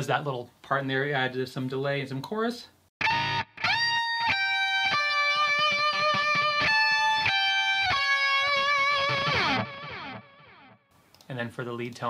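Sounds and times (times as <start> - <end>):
electric guitar with chorus and delay: 3.0 - 10.8.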